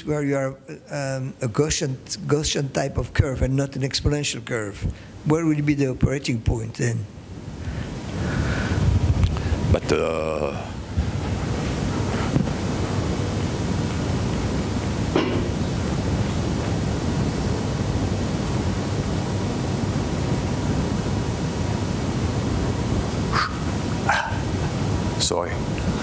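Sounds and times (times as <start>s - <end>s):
steady room background noise: 0.0s - 26.0s.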